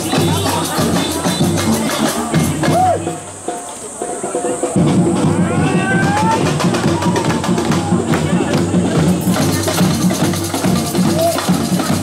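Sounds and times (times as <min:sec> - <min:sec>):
frame drums: 0:00.0 - 0:12.0
samba percussion drumming: 0:00.0 - 0:12.0.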